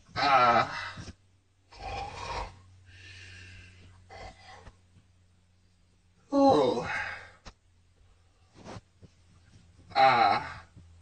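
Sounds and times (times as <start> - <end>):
low steady hum: 0.0 - 11.0
person breathing raspily: 1.7 - 4.8.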